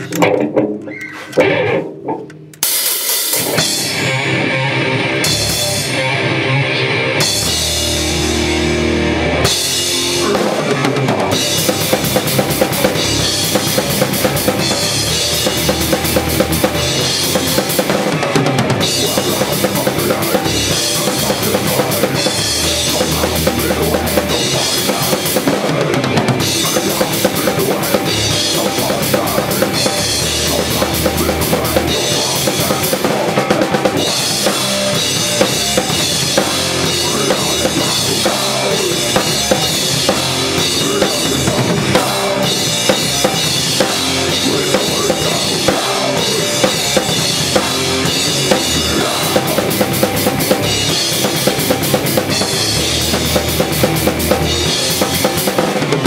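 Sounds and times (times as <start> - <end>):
death metal band playing: 0.0 - 56.0
fast drumming: 1.4 - 4.4, 7.2 - 56.0.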